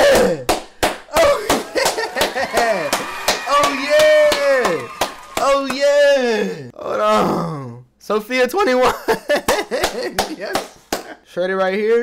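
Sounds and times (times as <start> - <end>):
man crying out excitedly: 1.1 - 5.0.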